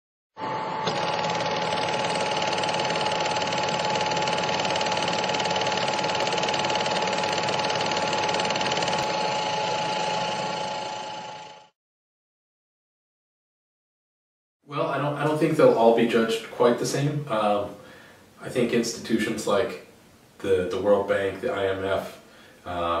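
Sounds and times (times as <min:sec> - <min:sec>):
fast mechanical clatter with hum: 0:00.8 - 0:11.7.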